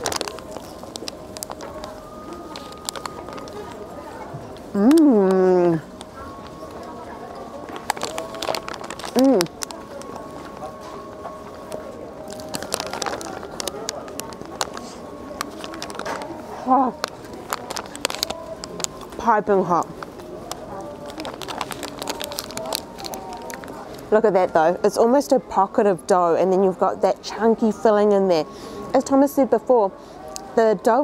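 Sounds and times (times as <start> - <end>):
paper crackling: 0.0 - 4.0, 7.6 - 24.1
faint street murmur: 0.0 - 31.0
chewing with mouth smacks: 20.0 - 23.8.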